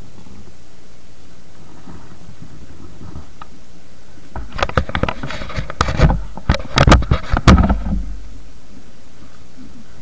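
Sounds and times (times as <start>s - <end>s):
low microphone rumble: 1.3s - 10.0s.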